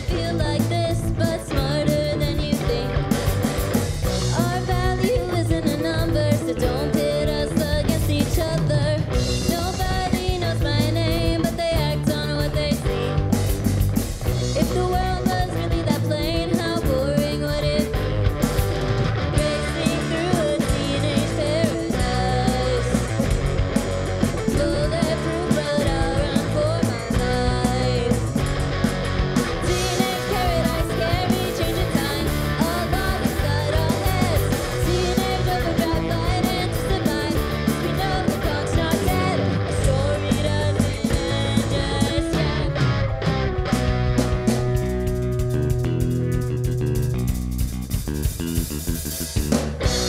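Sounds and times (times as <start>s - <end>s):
drum kit: 0.0s - 50.0s
electric bass: 0.0s - 50.0s
electric guitar: 0.0s - 50.0s.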